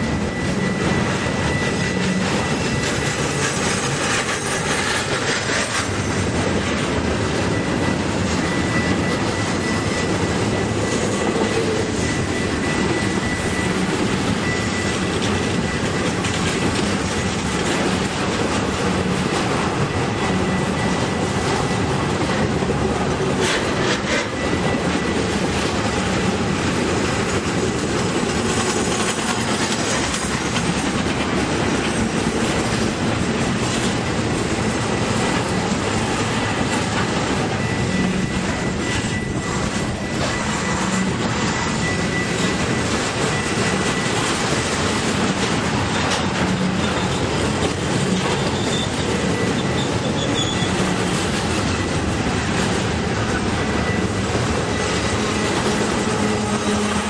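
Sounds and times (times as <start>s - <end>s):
freight train rolling past: 0.0s - 57.0s
wheels squealing on rails: 0.0s - 57.0s.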